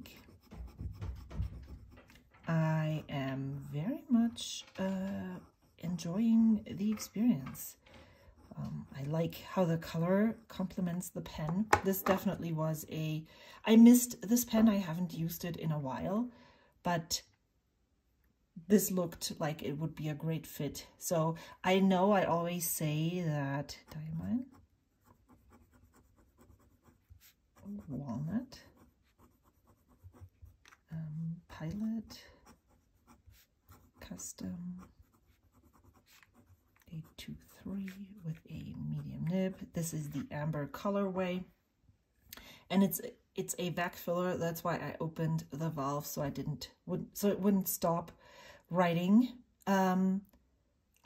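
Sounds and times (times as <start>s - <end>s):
fountain pen scratching on paper: 0.0s - 12.3s, 23.6s - 30.9s, 31.5s - 40.4s
person speaking: 2.4s - 16.1s, 26.4s - 41.5s.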